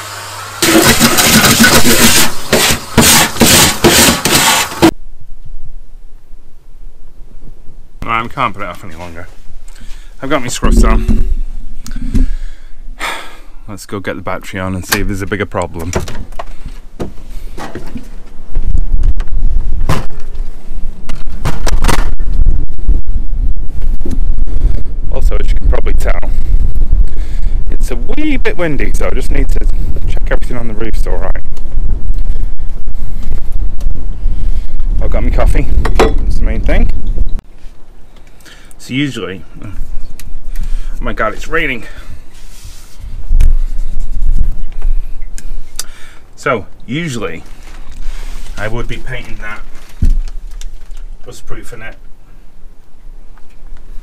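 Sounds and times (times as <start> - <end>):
rustling and bumps: 15.8 - 25.0, 47.4 - 51.2
wind buffeting microphone: 16.2 - 38.1, 43.0 - 46.4.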